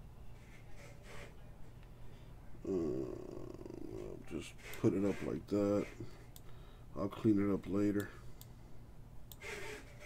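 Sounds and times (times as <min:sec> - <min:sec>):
man humming: 0:02.6 - 0:04.3.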